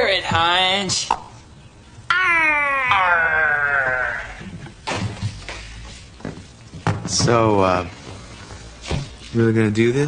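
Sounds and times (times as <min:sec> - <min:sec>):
child crying: 0:02.1 - 0:04.4.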